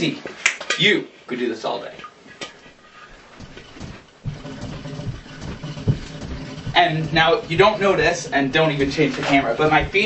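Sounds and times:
feet shuffling on floor: 2.6s - 10.0s
soft knocks on floor: 3.4s - 8.2s, 8.8s - 10.0s.

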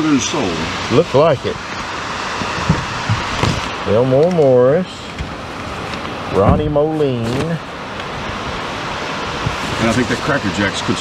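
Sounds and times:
rain hissing: 0.0s - 11.0s
soft knocks: 2.4s - 3.7s
paper sleeves being handled: 6.4s - 7.7s, 9.4s - 10.7s.

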